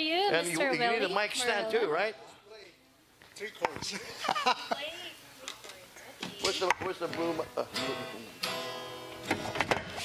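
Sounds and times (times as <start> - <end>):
acoustic guitar strumming: 6.3 - 10.0.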